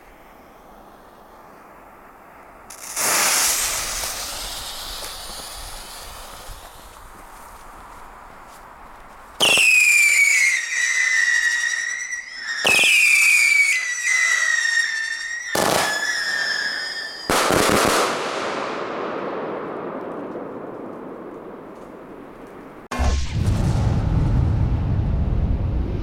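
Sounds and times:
whistling firework shots: 0.0s - 7.1s, 9.4s - 21.6s
loud firework burst: 2.7s - 7.0s, 9.4s - 20.0s.

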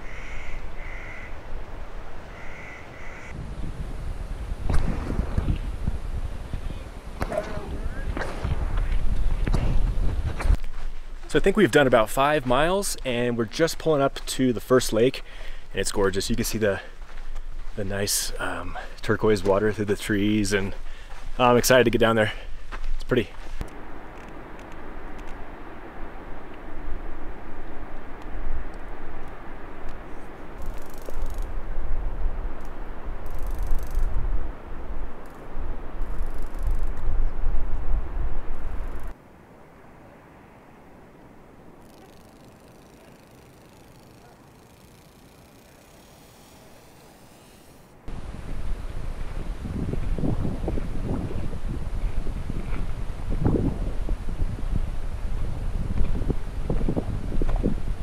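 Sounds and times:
wind buffeting microphone: 0.0s - 11.2s, 22.6s - 39.1s, 48.1s - 58.0s.

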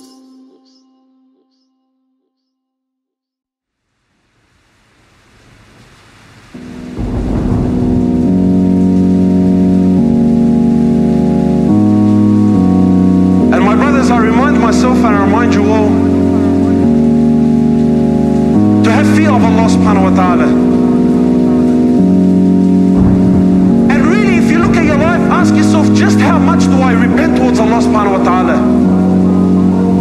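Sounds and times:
rain hissing: 3.8s - 30.0s
sustained vocal chords: 19.8s - 28.2s.

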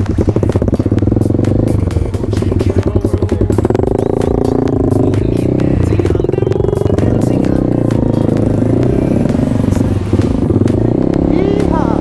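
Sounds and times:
dirt bike engine running: 0.0s - 12.0s.

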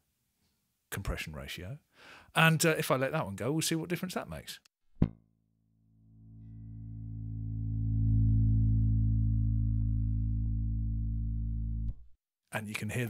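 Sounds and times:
bass guitar note: 6.1s - 12.1s.

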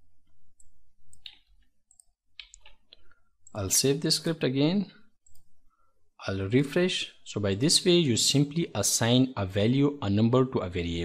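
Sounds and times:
keyboard and mouse clicks: 0.2s - 3.6s, 5.2s - 5.6s.

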